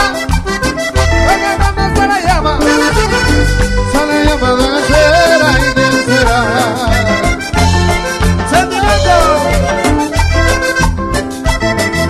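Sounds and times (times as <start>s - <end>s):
button accordion melody: 0.0s - 12.0s
latin dance band music: 0.0s - 12.0s.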